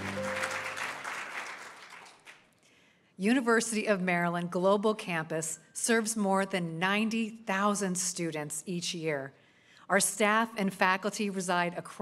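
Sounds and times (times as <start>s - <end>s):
music chord: 0.0s - 0.9s
audience applause: 0.0s - 2.4s.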